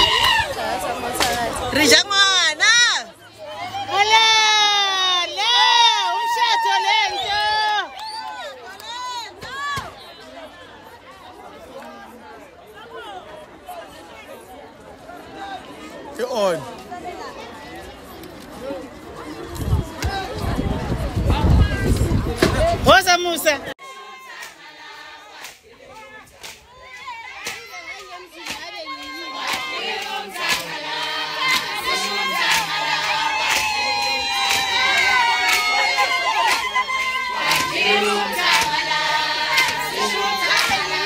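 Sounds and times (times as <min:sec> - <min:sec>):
loud high-pitched shouts: 0:00.0 - 0:00.7, 0:01.8 - 0:10.0, 0:26.0 - 0:41.0
crowd talking and calling out: 0:00.0 - 0:41.0.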